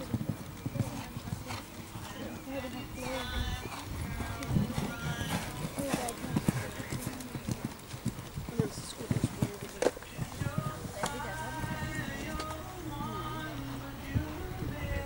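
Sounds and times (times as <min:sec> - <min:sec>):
horse hoofbeats on sand: 0:00.0 - 0:12.6
background music: 0:10.0 - 0:15.0.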